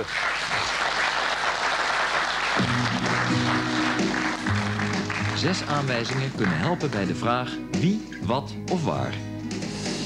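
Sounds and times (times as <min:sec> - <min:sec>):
audience applauding: 0:00.0 - 0:07.2.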